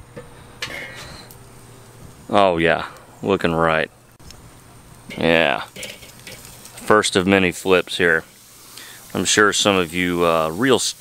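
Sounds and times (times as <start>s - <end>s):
grill lid metallic clink and scrape: 5.1s - 6.9s.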